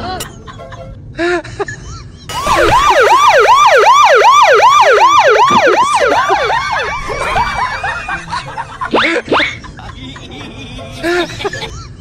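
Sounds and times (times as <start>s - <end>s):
siren in fast yelp pattern: 2.3s - 8.3s.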